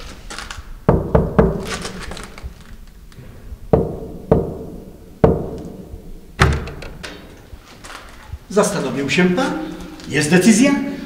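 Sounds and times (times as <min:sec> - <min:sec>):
knuckles knocking on a door: 0:03.7 - 0:05.6.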